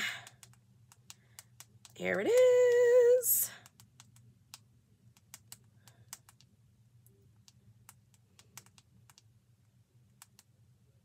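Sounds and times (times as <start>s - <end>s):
low steady hum: 0.0s - 11.0s
keyboard typing: 0.1s - 2.9s, 3.5s - 6.5s, 7.4s - 9.3s.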